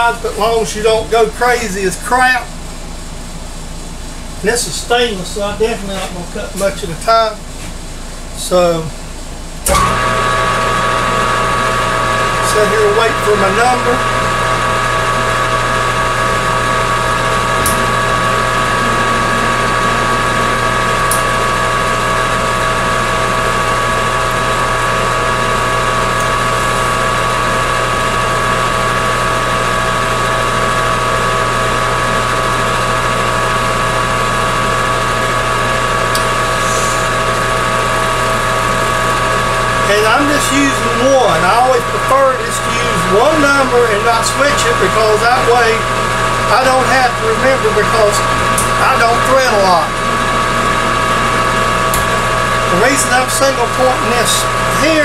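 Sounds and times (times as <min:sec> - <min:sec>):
metal lathe whining: 0:09.6 - 0:55.0.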